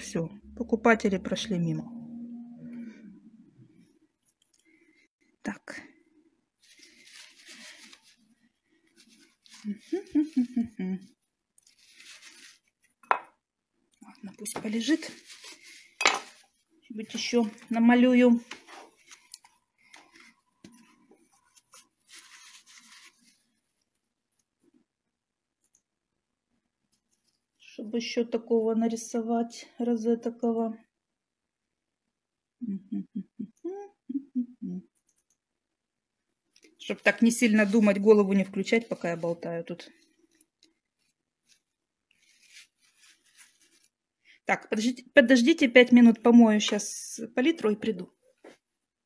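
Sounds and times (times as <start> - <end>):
soft rustles: 6.6 - 13.0, 14.2 - 24.5, 36.9 - 44.0.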